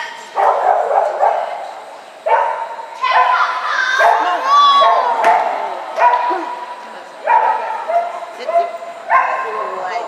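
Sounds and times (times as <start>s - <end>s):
dog barking: 0.4s - 1.6s, 2.3s - 3.4s, 4.0s - 6.3s, 7.3s - 9.9s.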